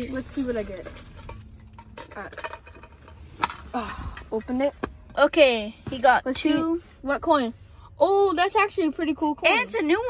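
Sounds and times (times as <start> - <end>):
plastic wrap rustling: 0.0 - 1.8.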